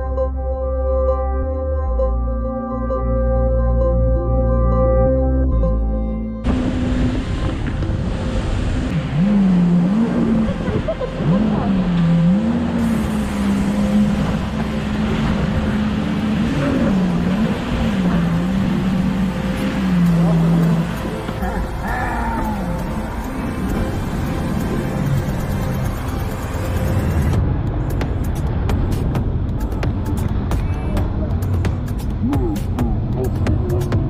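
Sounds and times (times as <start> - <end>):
background music: 0.0 - 34.0
rushing spray and water: 6.5 - 33.6
jet ski engine revving: 8.6 - 27.4.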